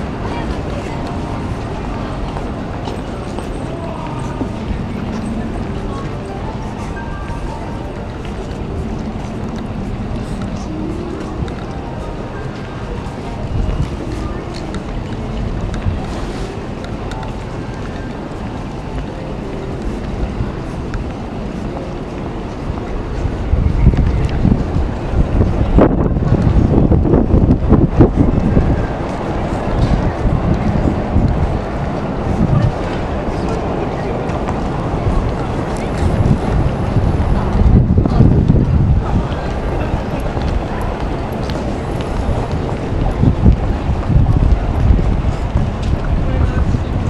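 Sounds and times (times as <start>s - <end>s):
voices of passers-by: 0.0s - 47.0s
wind rumble on microphone: 0.0s - 47.0s.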